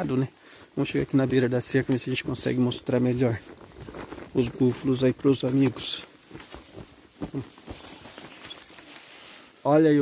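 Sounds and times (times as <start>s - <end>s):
grass and brush rustling: 0.0s - 10.0s
footsteps through grass: 0.1s - 10.0s.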